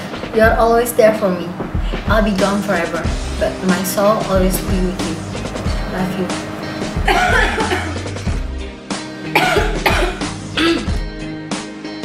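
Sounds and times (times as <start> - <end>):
slow background music: 0.0 - 12.0
woman sobbing: 7.0 - 8.1.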